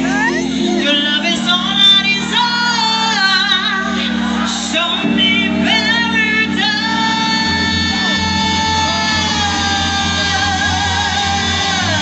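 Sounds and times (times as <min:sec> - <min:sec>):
live band playing: 0:00.0 - 0:12.0
pulsing bass beat: 0:00.0 - 0:12.0.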